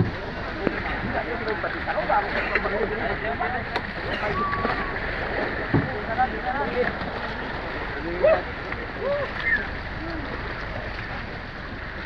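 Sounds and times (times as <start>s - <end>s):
water sloshing against boat: 0.0s - 12.0s.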